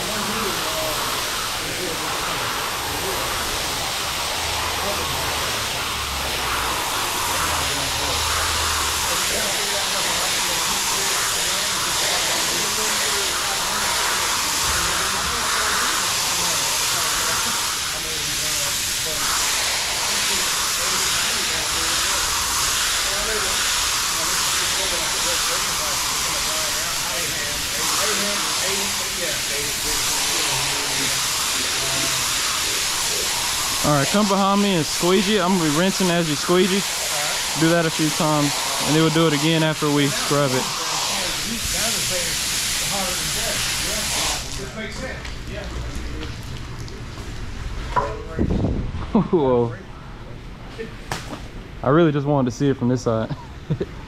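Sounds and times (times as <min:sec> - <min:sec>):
pressure washer spray hissing: 0:00.0 - 0:46.7.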